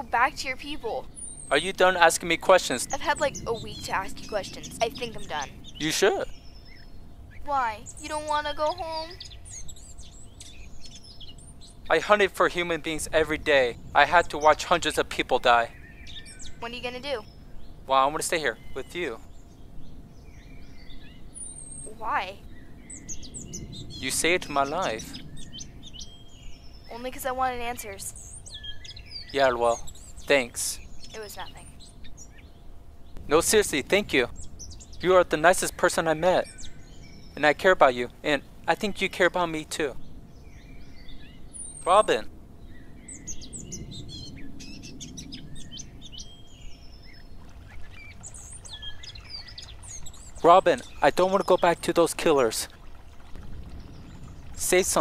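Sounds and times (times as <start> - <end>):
bird chirps: 0.0 - 55.0
low background rumble: 0.0 - 55.0.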